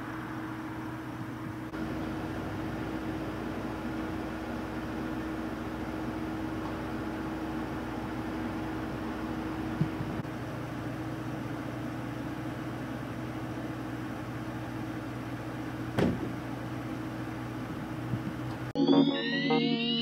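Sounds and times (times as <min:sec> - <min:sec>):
vehicle engine idling: 0:00.0 - 0:18.7.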